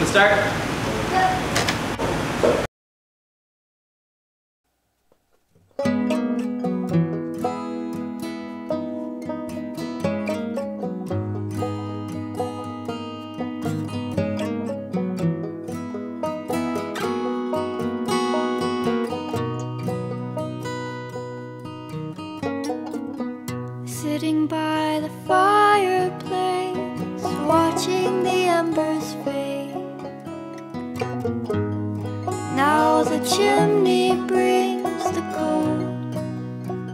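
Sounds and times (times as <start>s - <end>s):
acoustic guitar picking: 5.5s - 36.9s
banjo: 5.7s - 36.9s
cello: 24.9s - 36.9s.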